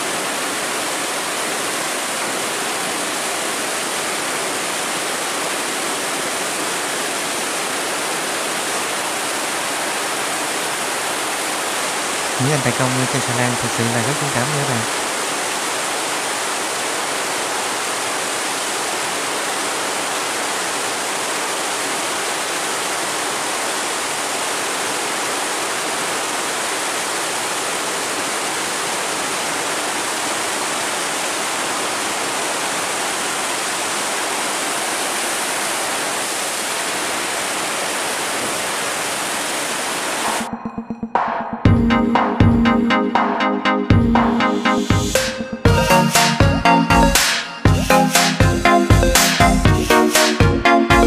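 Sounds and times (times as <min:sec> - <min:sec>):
water rushing through sluice gate: 0:00.0 - 0:40.5
electronic music: 0:40.4 - 0:51.0.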